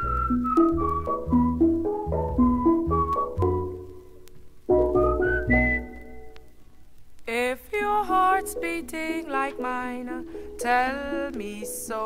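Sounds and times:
bass pan: 0.0s - 6.3s.

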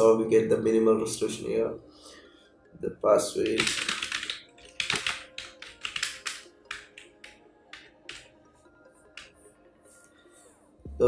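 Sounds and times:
keyboard typing clicks: 3.4s - 8.3s.

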